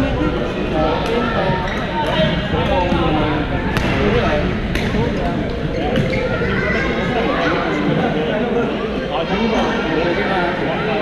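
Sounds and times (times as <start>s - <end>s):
babble of echoing voices: 0.0s - 11.0s.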